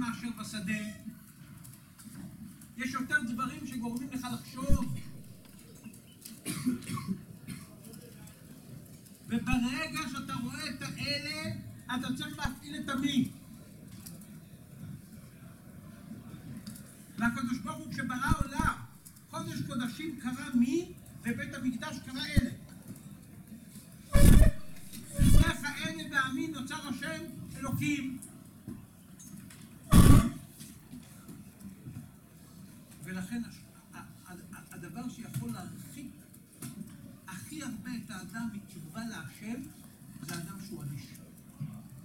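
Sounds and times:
person coughing: 6.4 - 7.8, 29.9 - 30.4
man's loud vocal outburst: 29.9 - 30.4.

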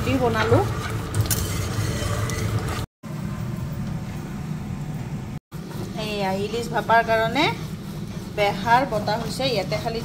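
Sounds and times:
stone roller grinding paste: 0.1 - 2.9, 5.6 - 10.0.

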